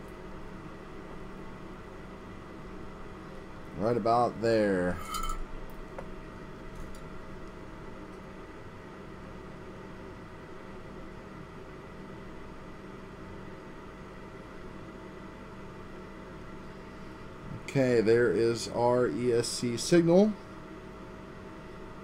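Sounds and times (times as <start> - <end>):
faint constant tones: 0.0 - 5.8
low hum and hiss: 0.0 - 22.0.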